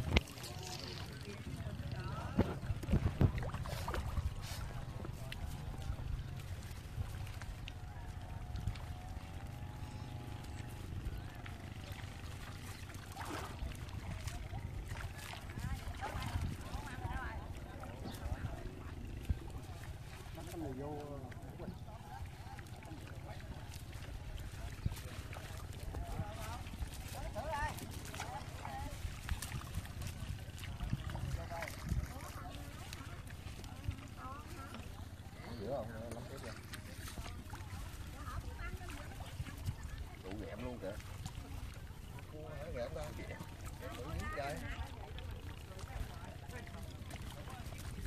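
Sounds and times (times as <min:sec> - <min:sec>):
people talking indistinctly: 0:00.0 - 0:06.7, 0:09.7 - 0:48.0.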